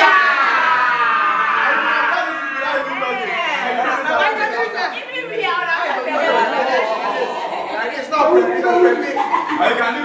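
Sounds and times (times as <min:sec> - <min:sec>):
group of people chattering: 0:00.0 - 0:10.0.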